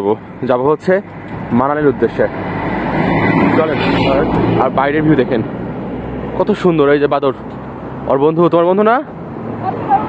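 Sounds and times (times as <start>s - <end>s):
man talking: 0.0s - 2.4s, 3.5s - 5.5s, 6.4s - 7.4s, 8.0s - 9.1s
vehicle approaching: 0.0s - 10.0s.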